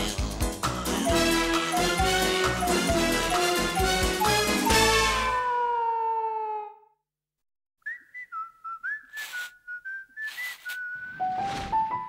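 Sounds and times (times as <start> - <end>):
person whistling a tune: 1.0 - 4.9, 7.8 - 11.2
brief swishes: 9.1 - 9.6, 10.2 - 11.8
music ending on falling slide: 11.0 - 12.0.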